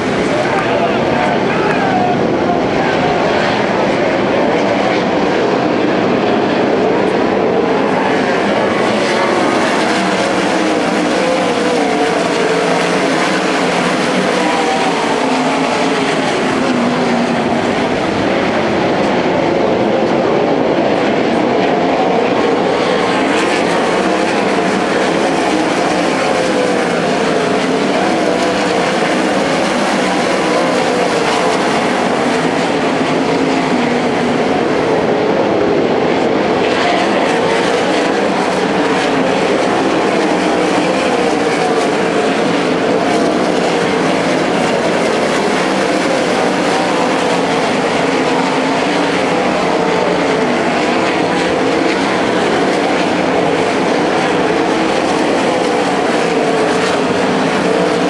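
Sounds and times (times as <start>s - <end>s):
racing car engines at high revs: 0.0s - 58.0s.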